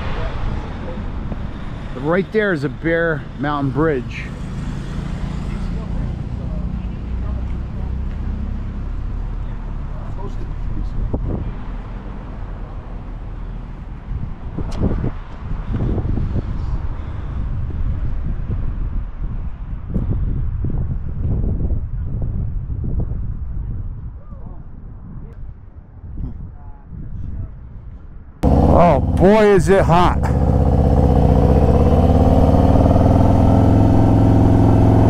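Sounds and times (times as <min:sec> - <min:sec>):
wind rumbling on microphone: 0:10.6 - 0:35.0
indistinct voices: 0:28.4 - 0:30.4.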